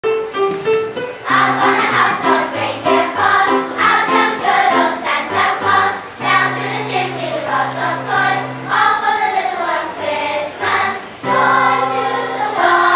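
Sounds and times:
electronic keyboard: 0.0s - 8.9s
children's choir singing: 1.2s - 12.9s.

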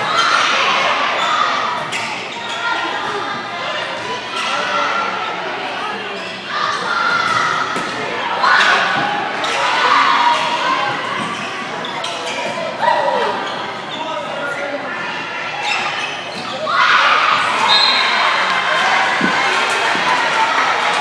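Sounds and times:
crowd shouting and cheering: 0.0s - 21.0s
spectators' voices: 0.0s - 21.0s.

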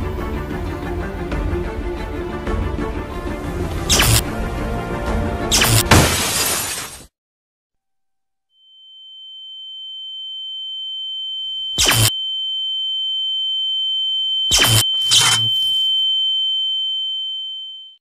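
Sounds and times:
crackling electrical blast: 5.5s - 6.8s
high-pitched ringing tone: 8.5s - 18.0s.

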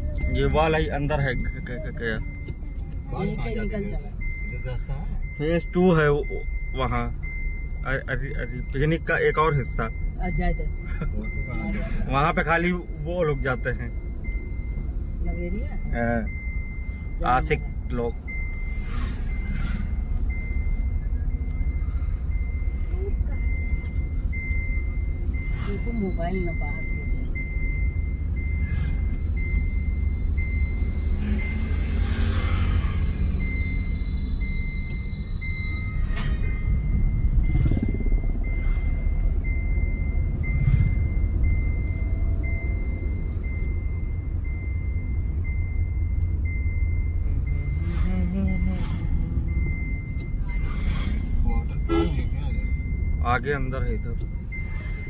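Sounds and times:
electronic warning beep: 0.0s - 55.0s
car cabin rumble: 19.6s - 55.0s.

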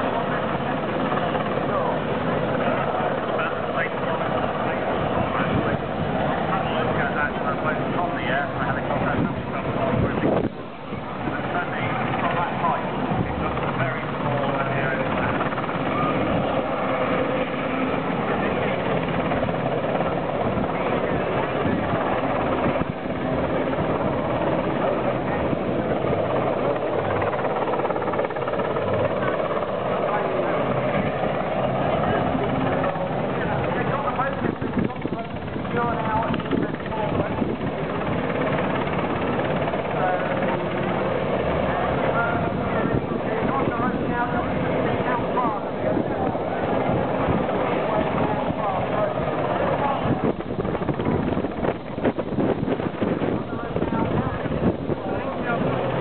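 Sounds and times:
helicopter hovering: 0.0s - 56.0s
indistinct voices talking: 0.0s - 56.0s.

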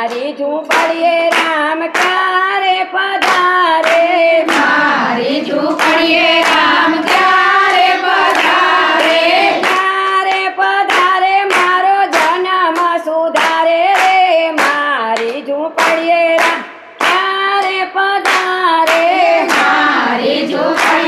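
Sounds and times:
hand claps: 0.0s - 21.0s
women singing together: 0.0s - 21.0s.

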